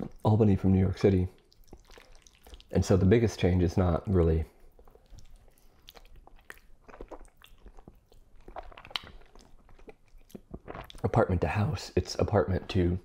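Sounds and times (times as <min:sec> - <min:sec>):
chewing noodles: 0:01.3 - 0:03.0, 0:04.5 - 0:11.2
wet mouth clicks and smacks: 0:01.4 - 0:02.7, 0:04.6 - 0:11.1.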